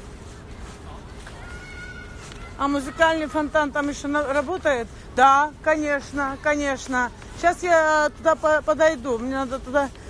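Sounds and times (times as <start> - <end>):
low city hum: 0.0 - 10.0.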